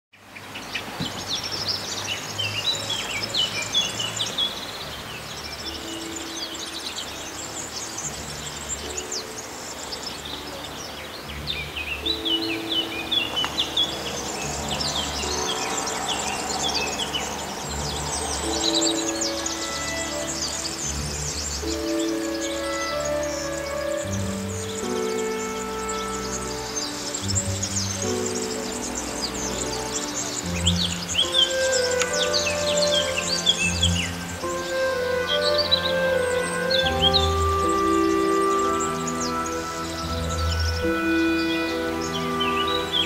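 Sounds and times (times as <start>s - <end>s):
songbirds chirping and trilling: 0.1s - 43.0s
quiet background music: 0.2s - 43.0s.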